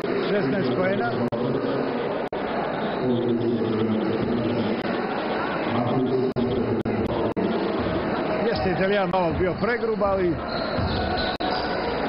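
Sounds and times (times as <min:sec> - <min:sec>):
voices and chatter in a hall: 0:00.0 - 0:12.0.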